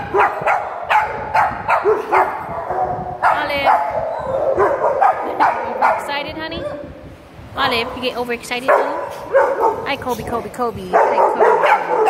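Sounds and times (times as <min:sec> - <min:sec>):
puppies barking and yipping: 0:00.0 - 0:06.9, 0:08.6 - 0:10.2, 0:10.8 - 0:12.0.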